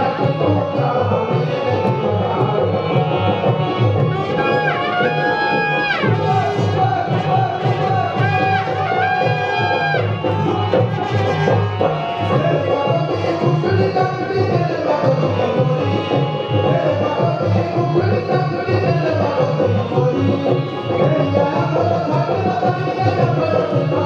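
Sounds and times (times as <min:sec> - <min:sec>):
hand drums rhythm: 0:00.0 - 0:24.0.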